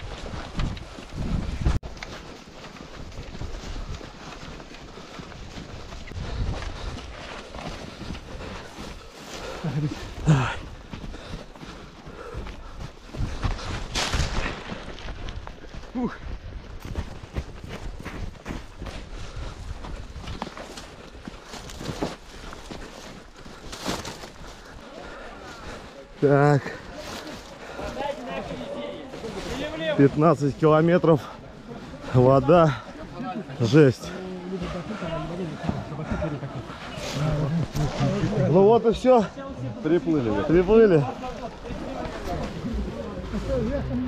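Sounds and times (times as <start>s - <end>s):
running footsteps on snow: 0.0s - 44.0s.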